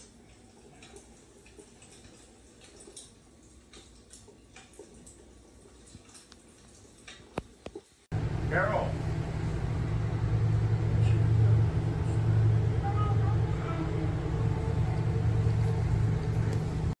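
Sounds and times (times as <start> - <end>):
low rumble: 8.1 - 17.0.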